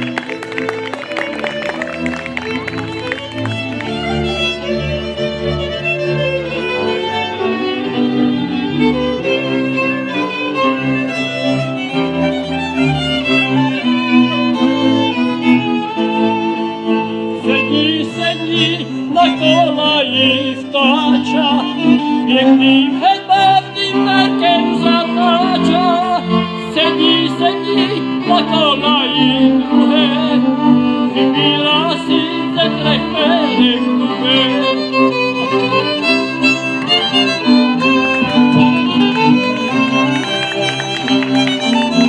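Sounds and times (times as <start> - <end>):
clarinet: 0.0 - 42.0
double bass: 0.0 - 42.0
fiddles: 0.0 - 42.0.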